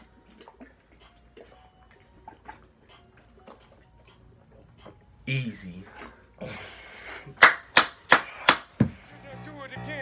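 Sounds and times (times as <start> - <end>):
water gulping from plastic bottle: 0.0 - 5.0.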